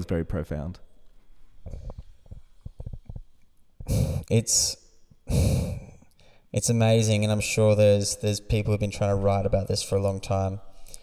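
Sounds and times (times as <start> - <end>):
breath: 3.8 - 4.3, 5.3 - 6.5, 10.7 - 11.0
person speaking: 3.8 - 11.0.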